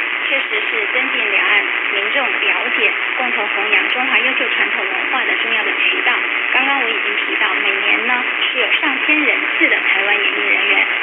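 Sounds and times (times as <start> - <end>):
radio news talk: 0.0 - 11.0
radio static hiss: 0.0 - 11.0.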